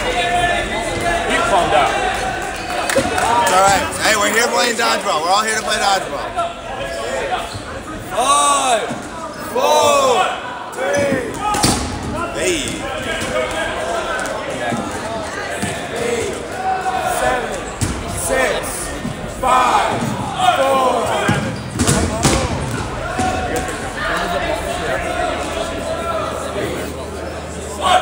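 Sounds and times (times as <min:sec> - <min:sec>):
people shouting: 0:06.2 - 0:26.5
dodgeballs smacking and bouncing: 0:10.9 - 0:16.6, 0:17.2 - 0:20.4, 0:21.0 - 0:24.0.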